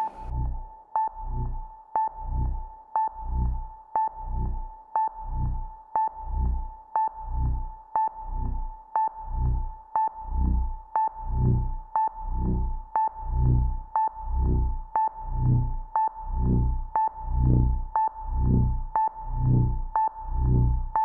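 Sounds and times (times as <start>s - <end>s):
low electronic throb: 0.0s - 21.0s.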